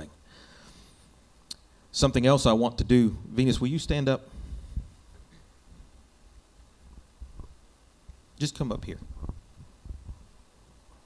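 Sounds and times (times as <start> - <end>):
microphone handling thumps: 4.3 - 5.9, 6.9 - 7.6, 8.8 - 10.4.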